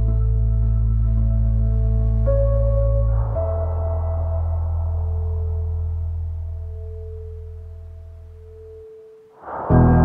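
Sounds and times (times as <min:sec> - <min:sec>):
low drone: 0:00.0 - 0:10.0
steady pure tone: 0:00.0 - 0:10.0.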